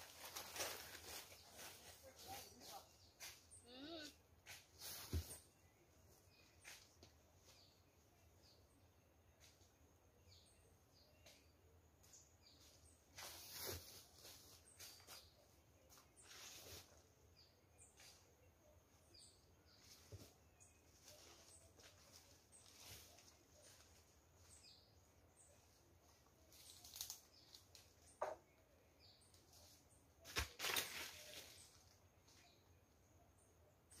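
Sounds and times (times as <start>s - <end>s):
rustling of dry leaves: 0.0s - 5.6s, 12.6s - 17.2s, 19.6s - 24.8s, 25.4s - 28.1s, 29.2s - 32.7s
faint bird chirps: 0.6s - 34.0s.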